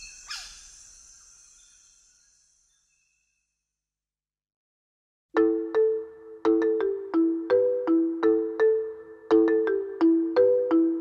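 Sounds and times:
solo marimba melody: 5.4 - 11.0.

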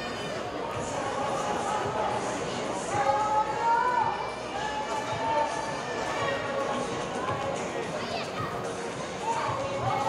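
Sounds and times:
crowd murmur: 0.0 - 10.0
spectators talking and calling out: 0.0 - 10.0.

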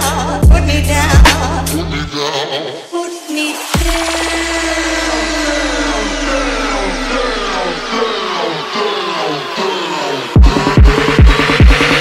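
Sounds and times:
dubstep build-up: 3.3 - 12.0
falling synth sweeps: 3.5 - 12.0
sub-bass note: 3.7 - 8.7.

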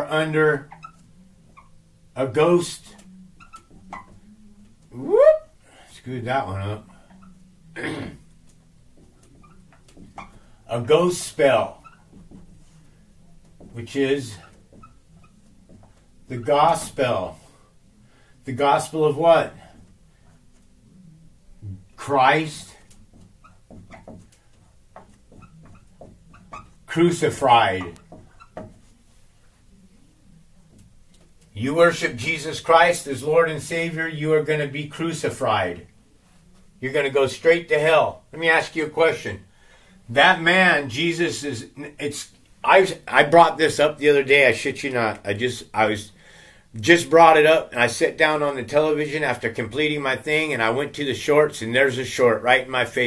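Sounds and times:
man speaking: 0.0 - 0.7, 2.2 - 3.0, 4.9 - 5.3, 5.9 - 6.9, 10.7 - 11.9, 13.7 - 14.5, 16.3 - 17.4, 18.5 - 19.6, 21.6 - 22.8, 26.9 - 28.0, 31.6 - 35.9, 36.8 - 39.4, 40.1 - 46.1, 46.8 - 53.0
marker squeaking on whiteboard: 0.0 - 39.4.

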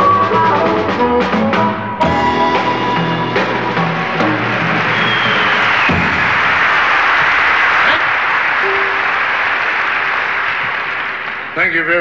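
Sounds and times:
band music: 0.0 - 8.0, 8.6 - 11.6
audience applauding: 3.8 - 12.0.

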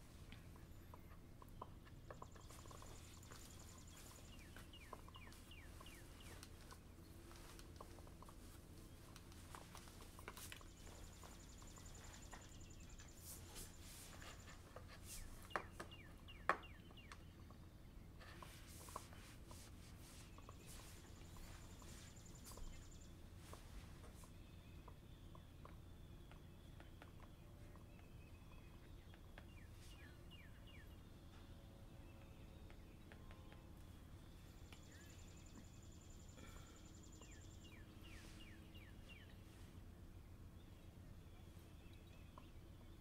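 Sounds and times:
low steady hum: 0.0 - 43.0
stylus tapping and scratching screen: 18.3 - 24.3.

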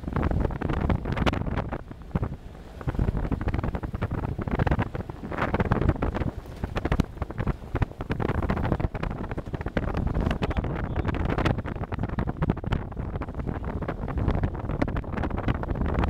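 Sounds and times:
engine and tyres rumbling: 0.0 - 16.0
wind buffeting microphone: 0.0 - 16.0
vehicle knocks and rattles: 3.0 - 15.0.

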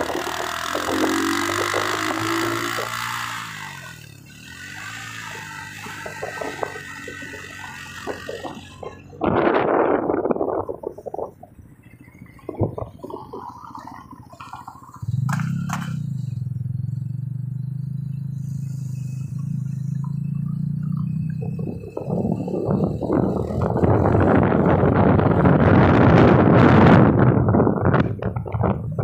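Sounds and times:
car engine droning: 0.0 - 29.0
wind rush on microphone: 6.2 - 14.3, 21.4 - 29.0.

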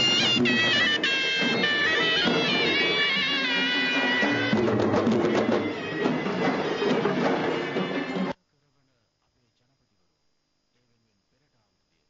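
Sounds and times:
bagpipe melody: 0.0 - 8.4
sharp drum beats: 0.0 - 8.4.

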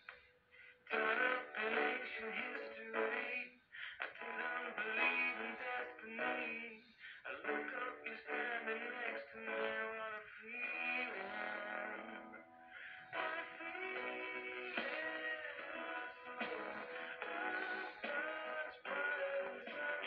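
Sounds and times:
music from television speakers: 0.0 - 20.0.

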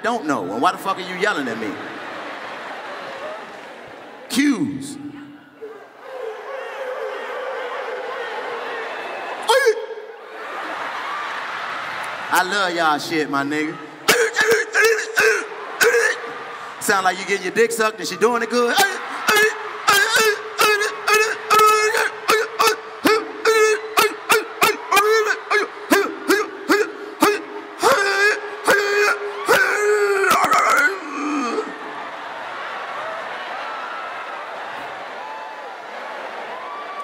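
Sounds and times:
man wailing into a microphone: 9.4 - 10.1, 13.8 - 16.4, 18.2 - 31.8
men's pitched vocal calls: 14.0 - 16.7, 18.8 - 31.8.

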